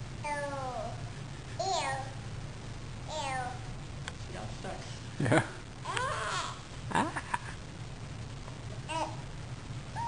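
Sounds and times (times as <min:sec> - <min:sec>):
toddler imitating a cat meow: 0:05.9 - 0:06.6.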